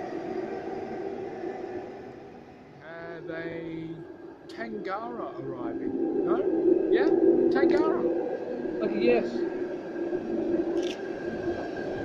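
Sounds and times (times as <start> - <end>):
electric train rumbling in tunnel: 0.0 - 12.0
people talking: 2.8 - 8.1, 8.7 - 9.5.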